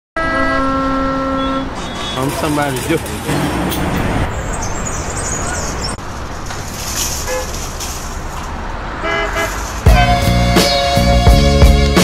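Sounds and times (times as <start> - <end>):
second horn tone: 0.2 - 2.1
vehicle horn: 0.2 - 2.3, 7.3 - 7.6, 9.0 - 11.7
street traffic: 0.2 - 12.0.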